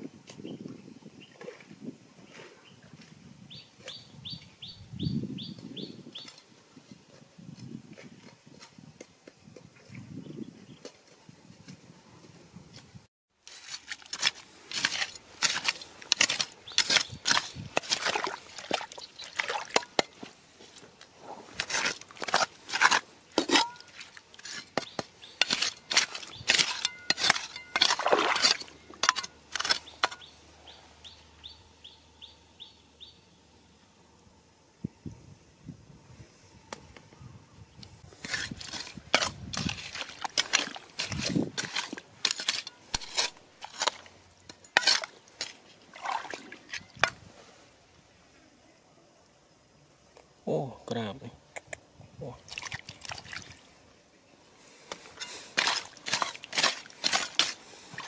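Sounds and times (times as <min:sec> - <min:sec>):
rocks and shells clicking in water: 0:39.2 - 0:47.2.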